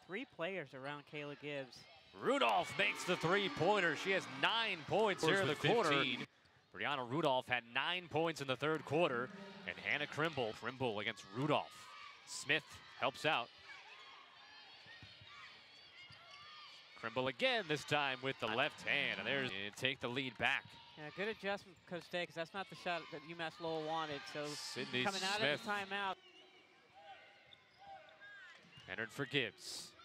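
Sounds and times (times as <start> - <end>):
scattered voices: 2.3 - 6.3.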